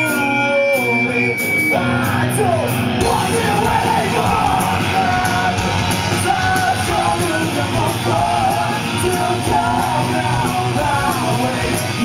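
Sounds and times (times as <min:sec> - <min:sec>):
live rock band: 0:00.0 - 0:12.0
person singing and yelling: 0:00.0 - 0:12.0.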